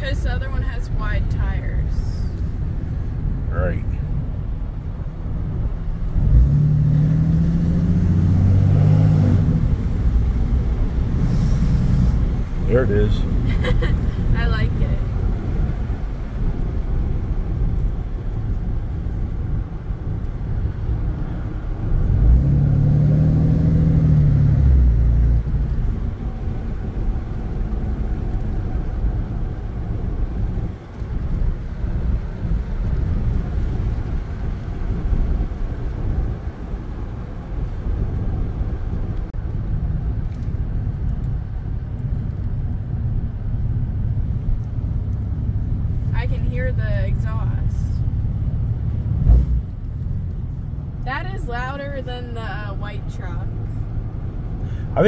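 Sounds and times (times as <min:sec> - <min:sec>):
diesel engine droning: 0:00.0 - 0:39.4, 0:42.2 - 0:55.0
tyre and road noise: 0:00.0 - 0:55.0.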